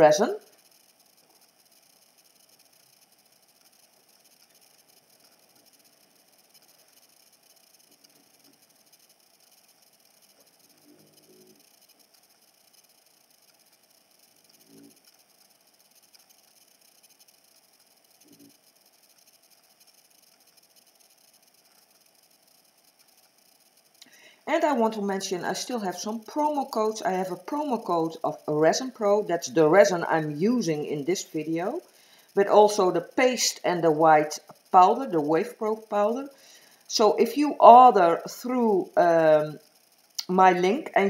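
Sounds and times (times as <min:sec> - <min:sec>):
faint room hiss: 0:00.0 - 0:41.0.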